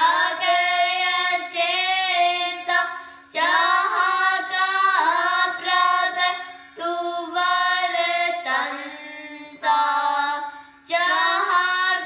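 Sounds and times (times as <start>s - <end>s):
children singing together: 0.0s - 12.0s
steady drone note: 0.0s - 12.0s.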